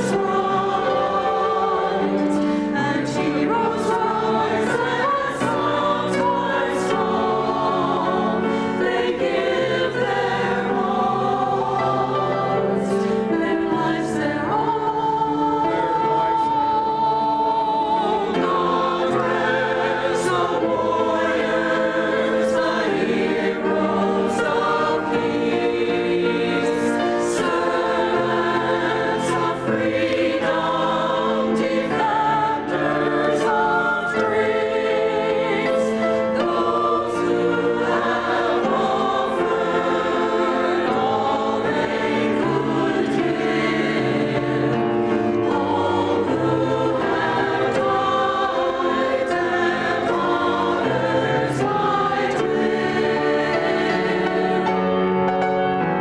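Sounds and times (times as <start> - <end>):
church choir singing: 0.0 - 56.0
grand piano accompaniment: 0.0 - 56.0.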